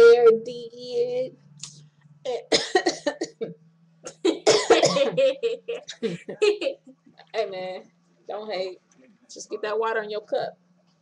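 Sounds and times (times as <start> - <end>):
low hum: 0.0 - 11.0
woman laughing: 4.1 - 6.9.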